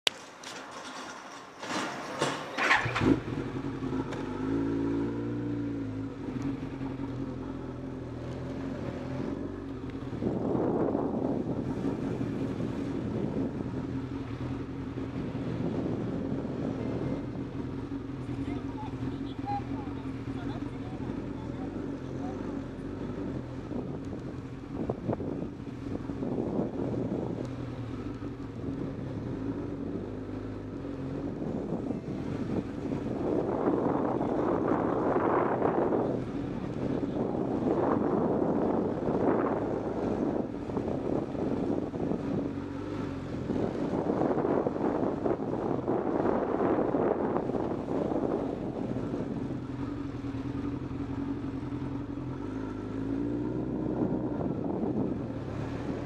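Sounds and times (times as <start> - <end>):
street background noise: 0.0 - 56.0
motorcycle engine running: 2.6 - 56.0.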